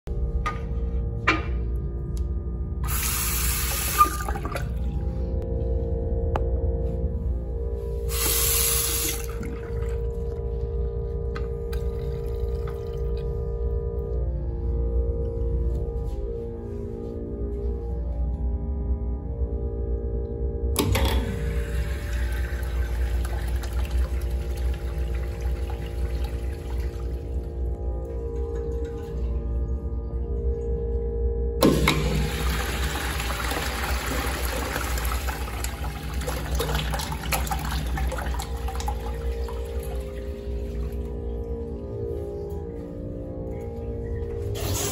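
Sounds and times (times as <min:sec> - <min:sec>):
steady hum: 0:00.1 - 0:44.9
water hissing in plumbing: 0:02.8 - 0:04.5, 0:08.1 - 0:09.5
urinal flushing water rush: 0:02.8 - 0:05.3, 0:08.1 - 0:10.6, 0:20.8 - 0:29.4, 0:31.6 - 0:41.7.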